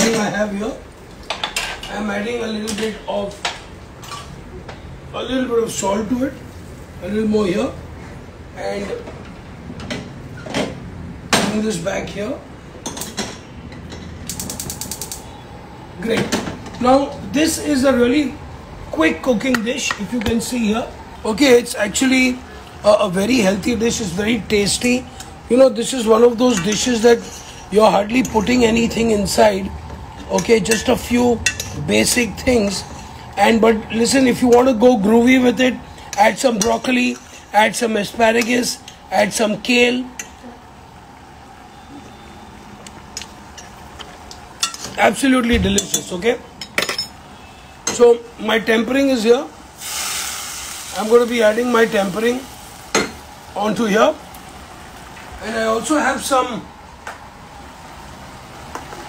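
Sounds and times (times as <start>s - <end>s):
pan simmering with soft hiss: 49.5s - 56.3s.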